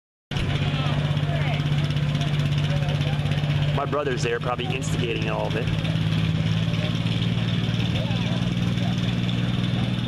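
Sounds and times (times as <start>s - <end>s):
tractor engine idling: 0.3s - 10.0s.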